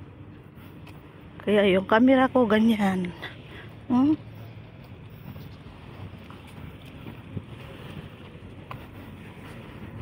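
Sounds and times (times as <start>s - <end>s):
wind buffeting microphone: 3.7s - 10.0s.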